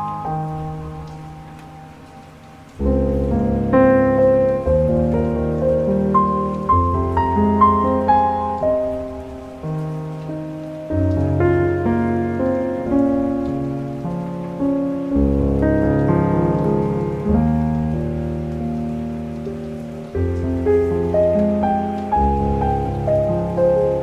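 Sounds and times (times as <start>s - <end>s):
rain patter: 0.0s - 24.0s
slow piano music: 0.0s - 24.0s.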